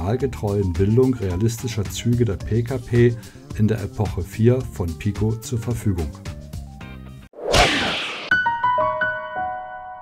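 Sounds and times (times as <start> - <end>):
background music: 0.0 - 7.3
loud swoosh: 7.4 - 8.4.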